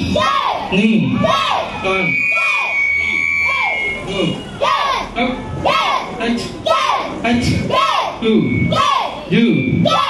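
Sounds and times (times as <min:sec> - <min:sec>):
people shouting: 0:00.0 - 0:10.0
microphone feedback tone: 0:08.3 - 0:10.0.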